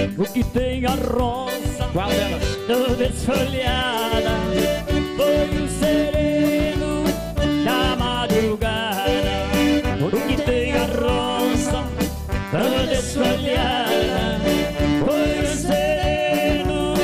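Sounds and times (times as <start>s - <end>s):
electronic keyboard: 0.0s - 17.0s
man singing: 0.0s - 17.0s
piano accordion: 0.0s - 17.0s
steady beat: 0.0s - 17.0s.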